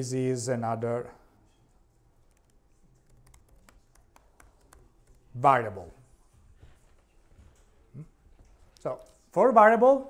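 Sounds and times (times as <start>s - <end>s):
faint keyboard typing: 1.5s - 5.4s.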